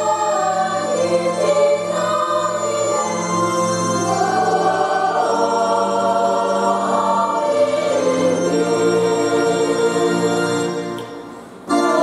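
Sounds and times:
church choir singing a hymn: 0:00.0 - 0:11.0, 0:11.7 - 0:12.0.

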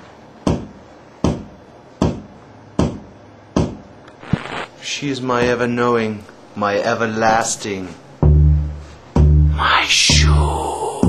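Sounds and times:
sharp knocks: 0:00.4 - 0:03.9, 0:09.1 - 0:09.4.

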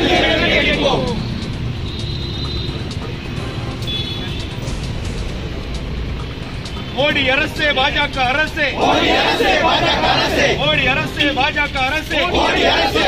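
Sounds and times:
low rumble of road traffic: 0:00.0 - 0:13.0.

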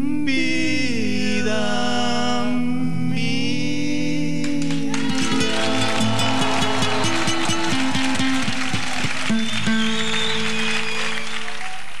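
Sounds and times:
acoustic guitars playing: 0:04.5 - 0:11.4.

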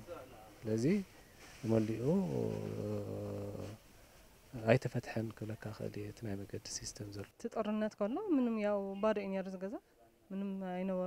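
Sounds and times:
man speaking: 0:00.0 - 0:03.8, 0:04.5 - 0:07.3.

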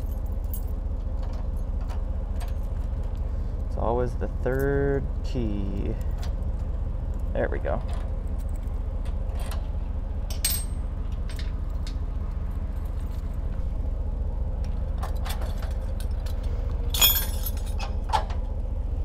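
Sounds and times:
metal chains clinking: 0:00.0 - 0:00.8, 0:10.3 - 0:11.9, 0:15.1 - 0:18.0
truck engine idling: 0:00.0 - 0:19.0.

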